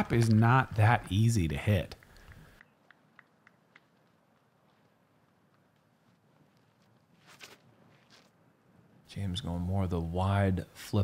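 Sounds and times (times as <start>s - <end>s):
footsteps and scuffs: 3.7s - 8.4s.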